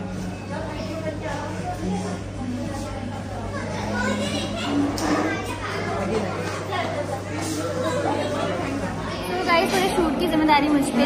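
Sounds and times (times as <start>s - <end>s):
adults and child talking: 0.0s - 11.0s.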